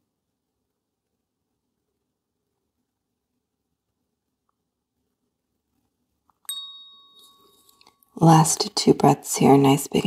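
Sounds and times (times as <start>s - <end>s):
bright bell-like ding: 6.5s - 8.0s.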